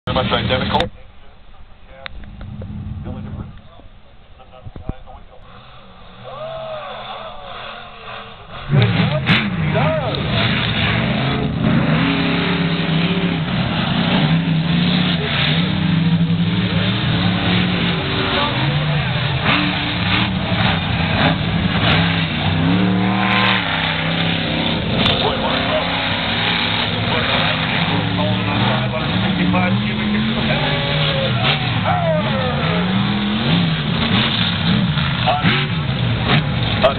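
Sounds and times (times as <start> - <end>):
monster truck engines revving: 0.0 - 0.9, 2.1 - 36.9.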